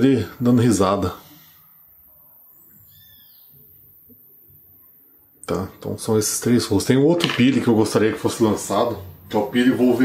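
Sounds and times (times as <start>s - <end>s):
faint high chirping call: 2.4s - 3.7s.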